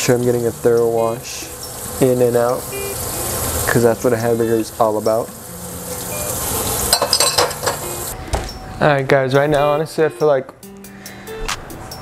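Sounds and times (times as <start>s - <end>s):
running tap water: 0.0s - 8.2s
dishes and cutlery clinking: 6.9s - 8.6s.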